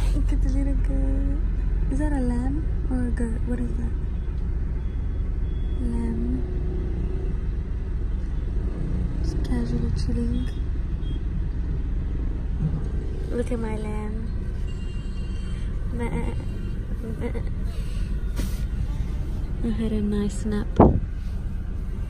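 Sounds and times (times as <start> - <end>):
voices: 0.0 - 4.1, 5.8 - 6.6, 9.2 - 10.7, 13.2 - 14.6, 15.5 - 21.1
car cabin rumble: 11.0 - 22.0.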